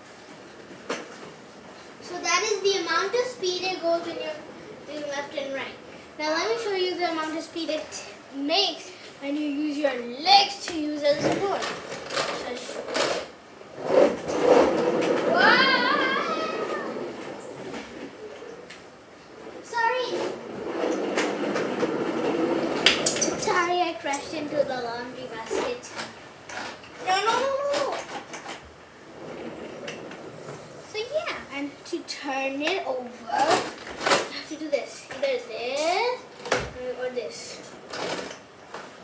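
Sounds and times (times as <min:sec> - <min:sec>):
plastic wheels rattling on tiles: 0:11.3 - 0:18.1, 0:37.9 - 0:38.4.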